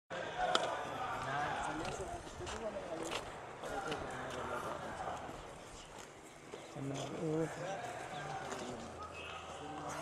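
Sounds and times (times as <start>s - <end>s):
people talking: 0.1s - 10.0s.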